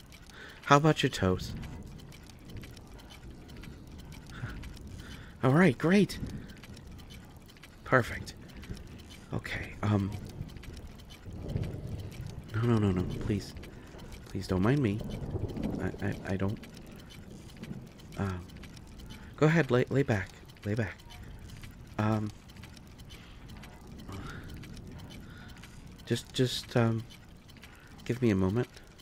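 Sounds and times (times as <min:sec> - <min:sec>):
faint scattered clicks: 0:00.0 - 0:29.0
low steady hum: 0:00.0 - 0:29.0.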